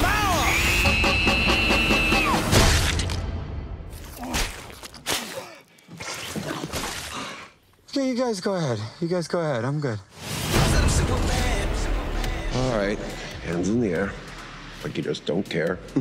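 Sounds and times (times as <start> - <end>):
trailer music with high tones: 0.0 - 4.0, 10.1 - 16.0.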